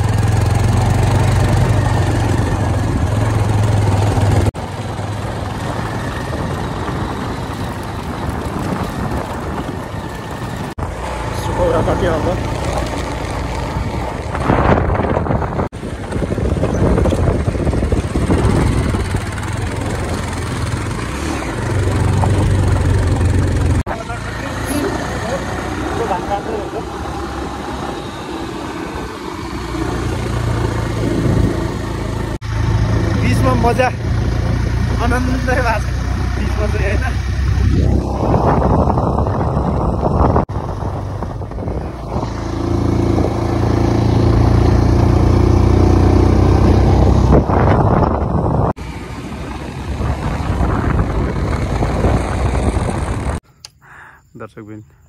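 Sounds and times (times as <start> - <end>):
wind rushing over microphone: 0.0 - 23.9, 26.9 - 53.4
motorcycle engine running: 0.0 - 53.4.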